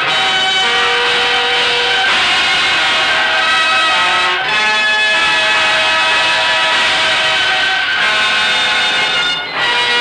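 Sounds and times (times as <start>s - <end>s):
orchestral sustained chords: 0.0s - 10.0s.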